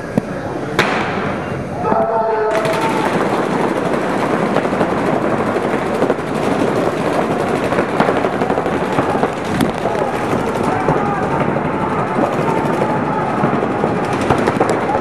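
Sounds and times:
paintball markers firing: 1.9 - 15.0.

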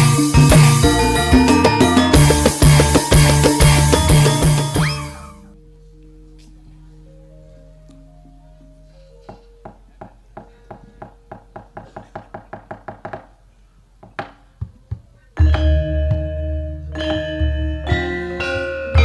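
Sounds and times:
gamelan orchestra: 0.0 - 11.6, 15.4 - 19.0
wooden knocking: 9.3 - 13.3.

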